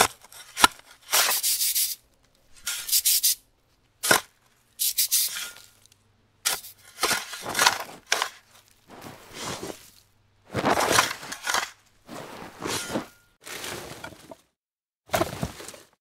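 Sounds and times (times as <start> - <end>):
dog digging in sand: 8.9 - 9.9.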